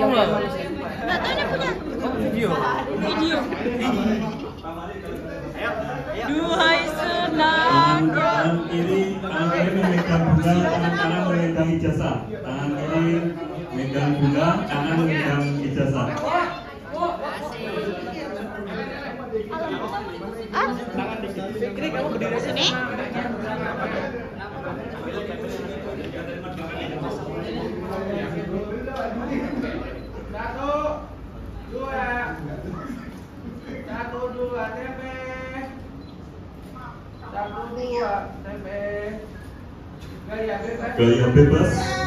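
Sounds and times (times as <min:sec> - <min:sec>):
crowd chattering: 0:00.0 - 0:42.0.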